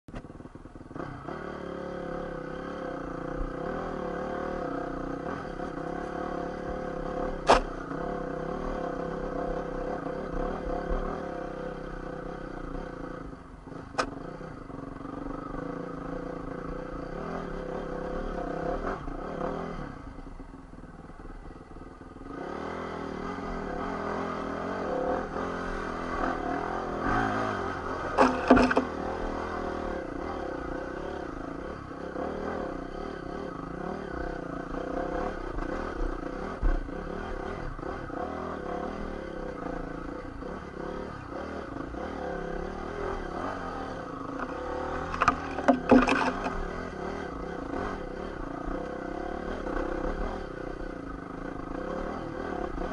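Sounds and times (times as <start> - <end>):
dirt bike engine revving: 0.9 - 20.0, 22.2 - 52.9
bike knocking on rocks: 28.2 - 28.9, 45.1 - 46.5.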